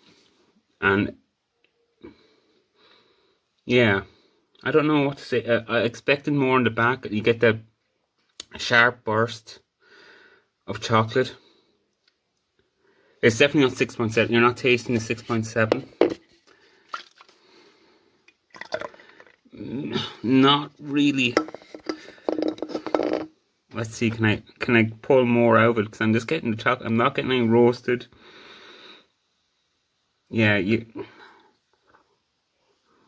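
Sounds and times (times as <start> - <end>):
man breathing: 9.8 - 10.6, 28.2 - 29.1
beer pouring into glass: 18.5 - 19.4.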